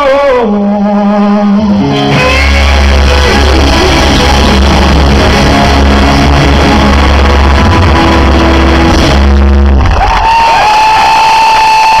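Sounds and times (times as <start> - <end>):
live rock band playing: 1.2 - 10.2
long high guitar note: 1.8 - 9.8.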